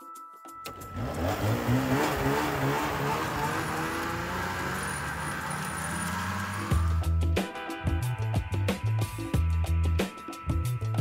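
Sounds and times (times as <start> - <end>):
snowmobile engine running: 0.8 - 7.0.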